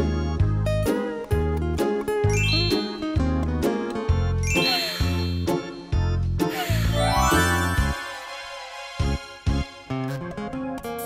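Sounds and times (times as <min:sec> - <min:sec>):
cheerful background music: 0:00.0 - 0:11.0
rising twinkling chime: 0:02.3 - 0:03.2, 0:04.5 - 0:05.7, 0:07.0 - 0:09.0.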